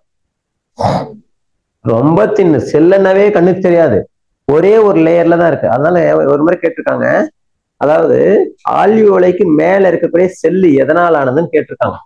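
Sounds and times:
man clearing his throat: 0.8 - 1.3.

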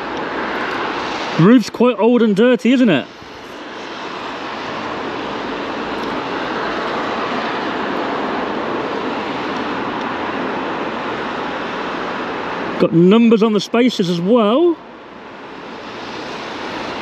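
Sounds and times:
drone propellers whirring: 3.0 - 17.0.

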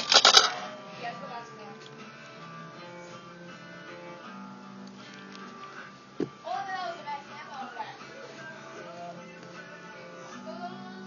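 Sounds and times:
sharp clicks and rattles: 0.0 - 0.6
faint background music: 0.0 - 11.0.

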